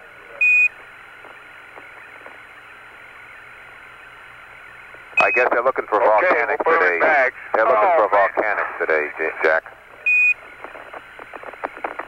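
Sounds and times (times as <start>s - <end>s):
radio static hiss: 0.0s - 12.0s
soft radio clicks: 0.8s - 2.4s, 10.4s - 12.0s.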